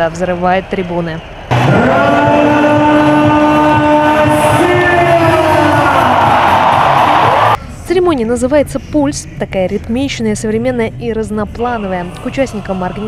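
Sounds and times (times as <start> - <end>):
large crowd cheering: 0.8 - 7.6
stadium music with pulsing beat: 1.5 - 7.6.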